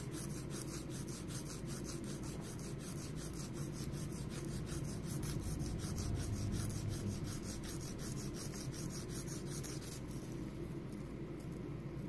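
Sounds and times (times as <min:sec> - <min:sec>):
nail file rasping on fingernail: 0:00.0 - 0:10.4.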